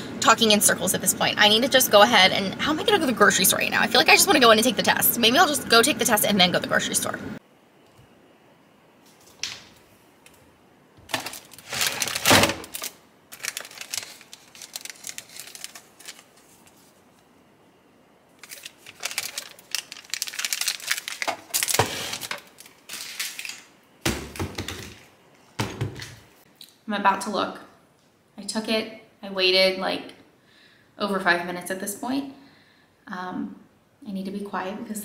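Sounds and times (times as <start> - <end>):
packaging crinkling: 11.1 - 17.2, 18.4 - 23.8.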